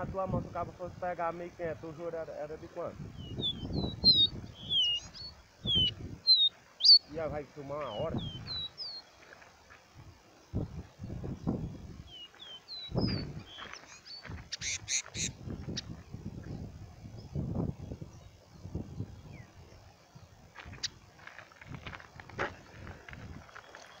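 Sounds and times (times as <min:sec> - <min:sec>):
small bird singing: 0:03.0 - 0:09.3, 0:10.3 - 0:21.1, 0:23.5 - 0:24.0.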